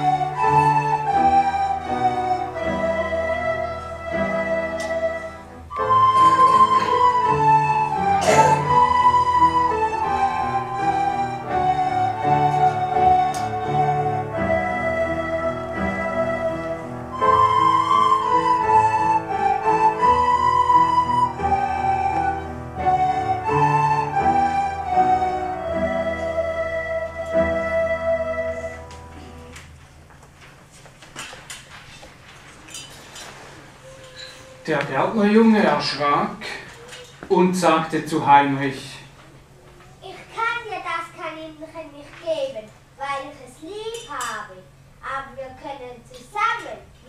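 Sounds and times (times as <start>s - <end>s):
recorder ensemble playing: 0.0s - 29.6s
small knocks and rustles: 28.9s - 34.9s.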